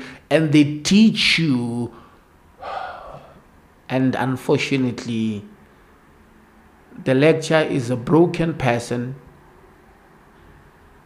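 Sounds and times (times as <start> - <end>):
man speaking: 0.3 - 2.0, 3.9 - 5.5, 7.0 - 9.2
man breathing in: 2.0 - 3.4.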